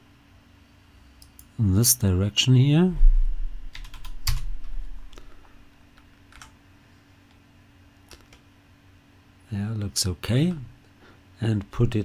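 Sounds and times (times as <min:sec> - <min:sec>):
faint steady hum: 0:00.0 - 0:12.0
computer keyboard keystrokes: 0:03.7 - 0:04.5, 0:06.0 - 0:06.6, 0:08.1 - 0:08.5.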